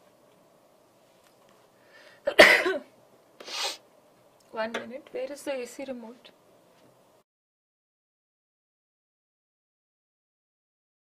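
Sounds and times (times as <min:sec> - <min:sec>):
faint intake of breath: 0:01.7 - 0:02.3, 0:03.4 - 0:03.8
person coughing: 0:02.3 - 0:02.9.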